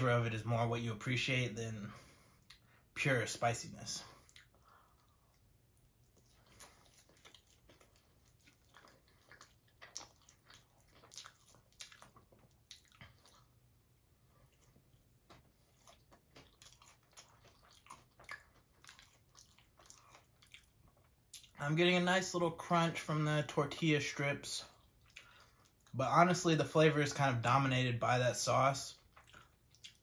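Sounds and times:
chewing crunchy food: 0:04.0 - 0:21.6, 0:24.6 - 0:26.0, 0:28.9 - 0:30.0.

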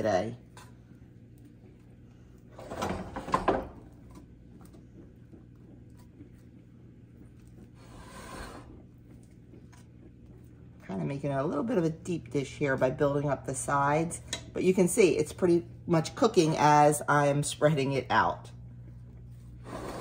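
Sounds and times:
low steady hum: 0:00.0 - 0:20.0
spatula scraping skillet: 0:07.8 - 0:08.8.

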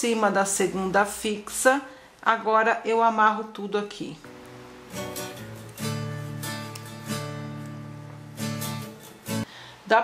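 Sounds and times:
strummed acoustic guitar chords: 0:04.3 - 0:09.5.

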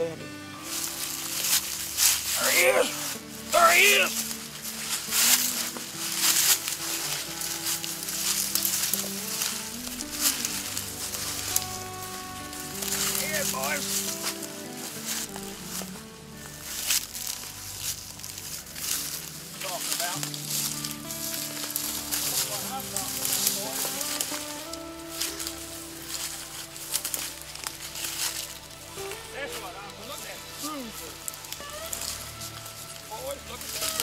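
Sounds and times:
background music sustained chords: 0:00.0 - 0:34.0
footsteps through dry grass and leaves: 0:00.5 - 0:34.0.

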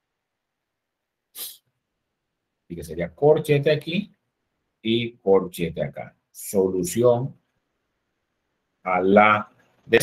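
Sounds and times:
quick sniff: 0:01.3 - 0:01.7.

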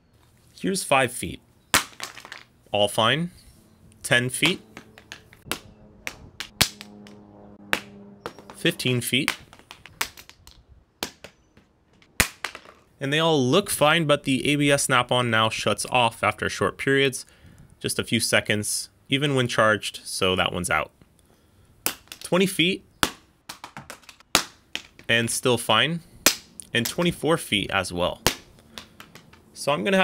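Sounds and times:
lights clattering and bouncing: 0:04.4 - 0:12.9, 0:23.0 - 0:25.1, 0:28.2 - 0:29.6.

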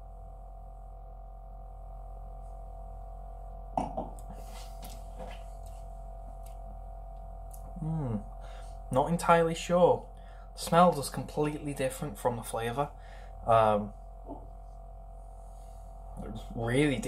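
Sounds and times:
low electrical hum: 0:00.0 - 0:17.0
man humming mmm: 0:07.7 - 0:08.4.

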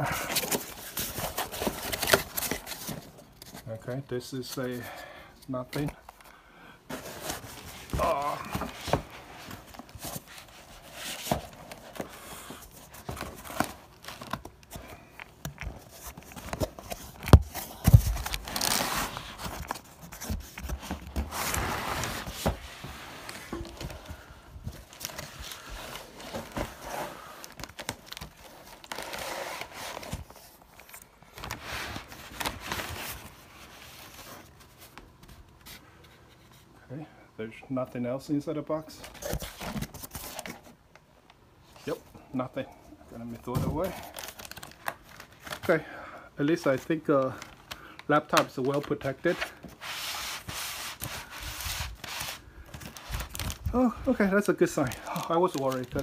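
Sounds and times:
cardboard box rustling: 0:06.9 - 0:34.9.

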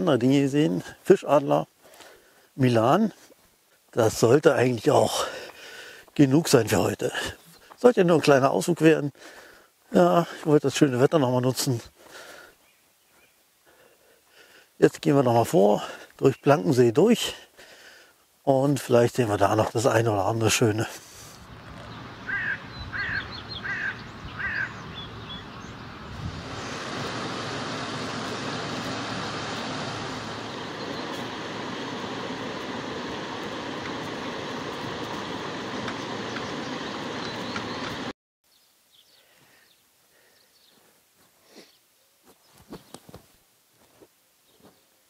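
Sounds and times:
bird calling: 0:21.3 - 0:25.9, 0:26.6 - 0:38.1
loud steady rushing noise: 0:21.4 - 0:38.1.

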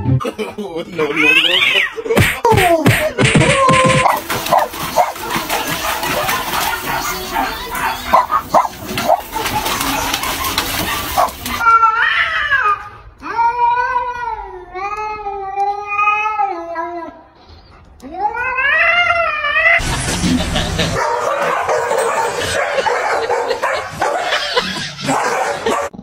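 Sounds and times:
cats yowling: 0:03.6 - 0:12.8.

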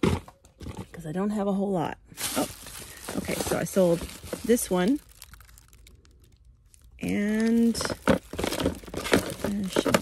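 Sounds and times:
plastic bags crinkling: 0:02.1 - 0:10.0.

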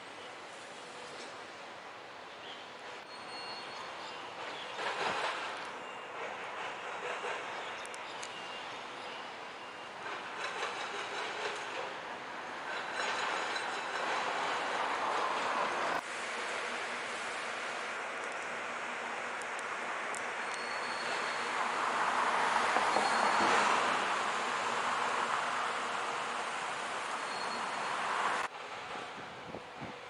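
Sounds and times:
vehicles passing on road: 0:02.9 - 0:30.0.

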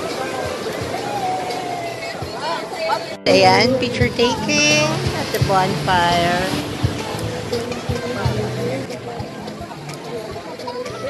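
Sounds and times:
background music: 0:00.0 - 0:11.0
people talking and chattering: 0:00.0 - 0:11.0.

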